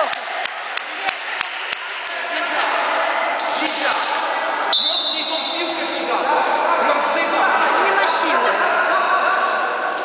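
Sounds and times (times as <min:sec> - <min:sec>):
voices calling and shouting: 0:00.8 - 0:10.0.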